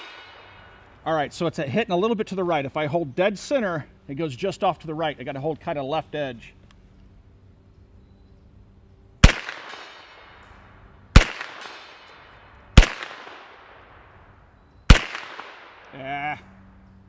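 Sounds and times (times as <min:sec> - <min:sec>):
gunshots with echo: 0:09.2 - 0:10.4, 0:11.2 - 0:12.2, 0:12.8 - 0:13.9, 0:14.9 - 0:15.9.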